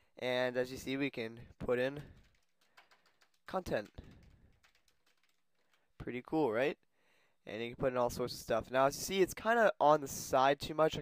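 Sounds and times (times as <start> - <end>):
faint keyboard typing: 1.4 - 6.0.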